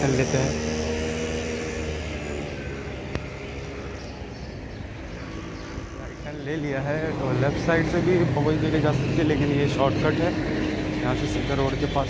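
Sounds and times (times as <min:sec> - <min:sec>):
road and wind noise: 0:00.0 - 0:12.0
vehicle engine humming: 0:00.0 - 0:12.0.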